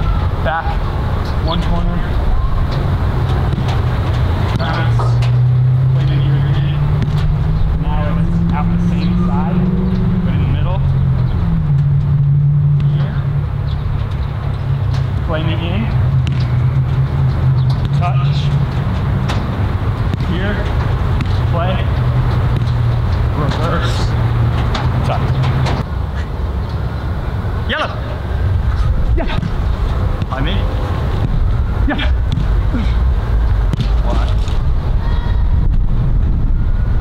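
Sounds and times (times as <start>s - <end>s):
low engine drone: 0.0s - 37.0s.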